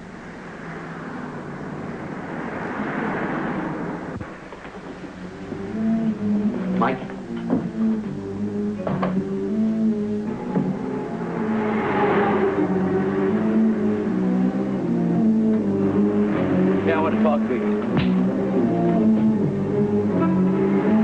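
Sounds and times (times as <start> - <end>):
dramatic background score: 0.0 - 21.0
noisy swell: 0.0 - 21.0.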